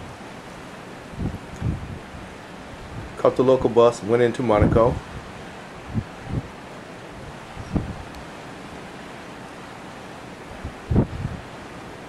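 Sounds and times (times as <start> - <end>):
wind blowing over microphone: 1.0 - 8.3, 10.5 - 11.6.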